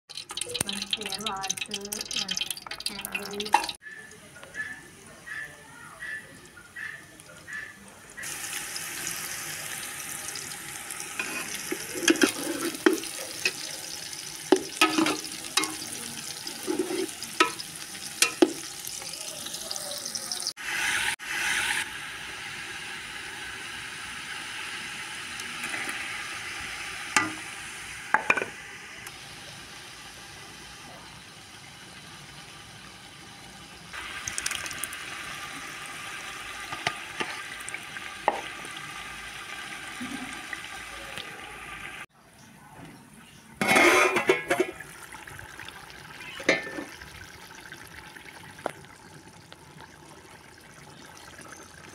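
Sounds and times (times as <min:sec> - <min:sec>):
food sizzling in oil: 0:00.1 - 0:05.4, 0:07.5 - 0:42.1, 0:43.6 - 0:51.9
metal ladle scraping pot: 0:11.0 - 0:13.7, 0:14.5 - 0:18.6, 0:27.2 - 0:27.5, 0:43.6 - 0:44.8, 0:46.4 - 0:47.0.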